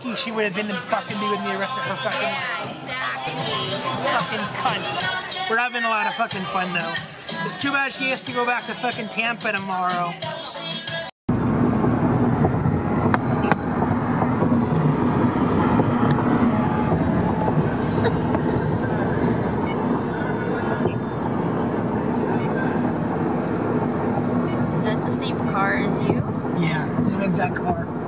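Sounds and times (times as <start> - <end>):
car driving at highway speed: 0.0 - 6.1, 11.3 - 28.0.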